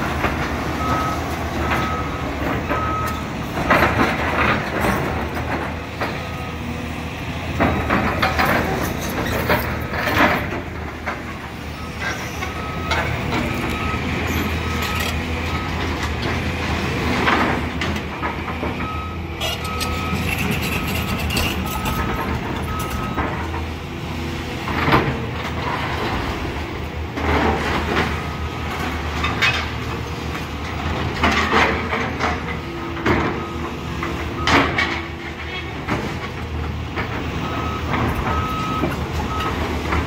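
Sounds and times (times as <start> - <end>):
excavator diesel engines humming: 0.0 - 40.0.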